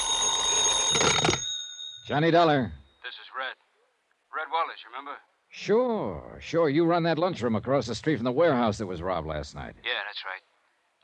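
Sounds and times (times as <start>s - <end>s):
telephone bell ringing: 0.0s - 2.1s.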